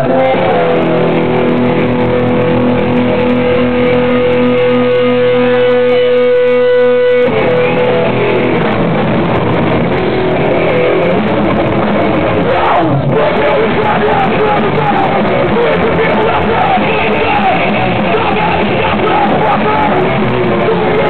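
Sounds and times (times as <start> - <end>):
hardcore punk band playing: 0.0 - 21.0.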